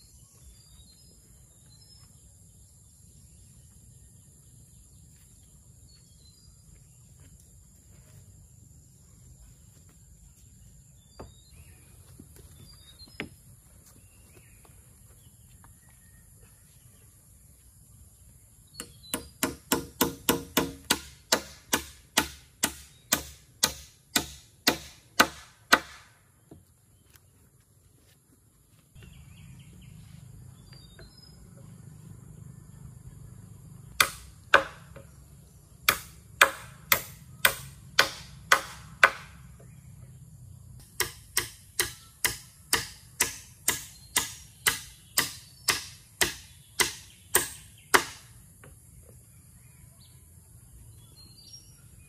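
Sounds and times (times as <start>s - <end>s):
hammer striking wooden poles: 18.8s - 26.6s, 34.0s - 35.1s, 35.8s - 39.7s, 40.8s - 48.8s.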